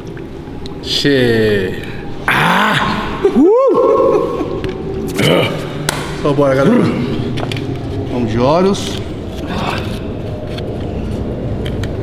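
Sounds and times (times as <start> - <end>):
gym background rumble: 0.0 - 12.0.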